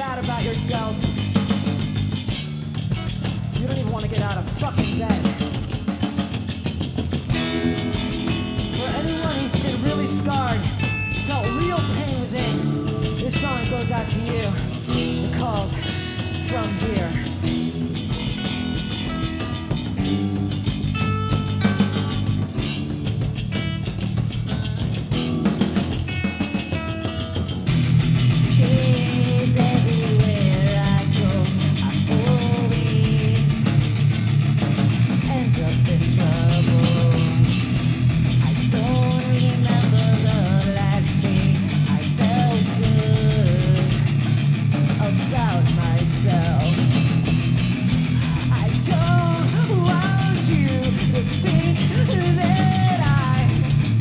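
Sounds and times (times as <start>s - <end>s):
drums: 0.0s - 54.0s
guitar picking single notes: 0.0s - 54.0s
live metal band playing: 0.0s - 54.0s.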